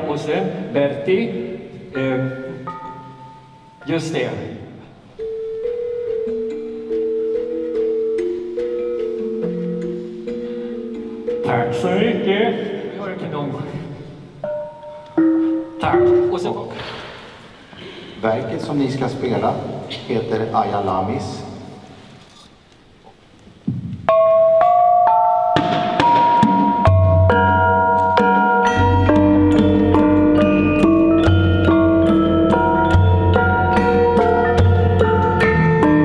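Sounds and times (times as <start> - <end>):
metallophone ringing notes: 1.9 - 13.0, 14.4 - 16.8, 24.1 - 36.0.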